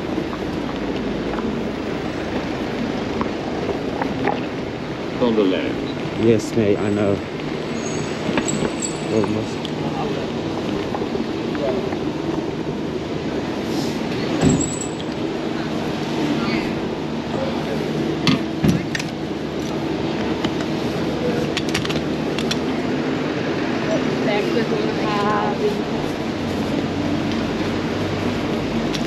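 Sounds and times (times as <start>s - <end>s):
engine hum: 0.0s - 29.0s
vehicles rushing past: 0.0s - 29.0s.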